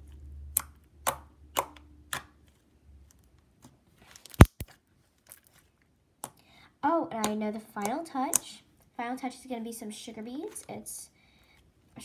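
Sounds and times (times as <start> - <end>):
slime popping: 4.3 - 4.7.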